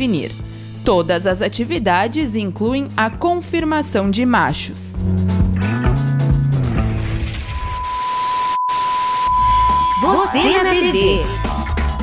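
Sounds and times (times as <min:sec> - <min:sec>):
steady high beep: 0:07.4 - 0:11.8.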